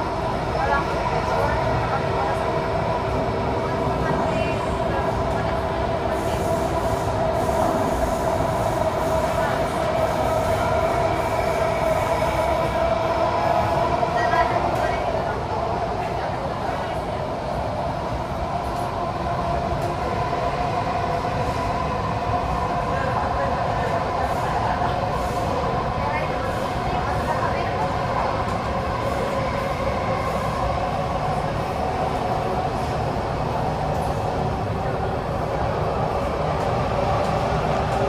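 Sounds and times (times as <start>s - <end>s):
metro train interior rumble: 0.0s - 38.0s
train whine: 0.0s - 38.0s.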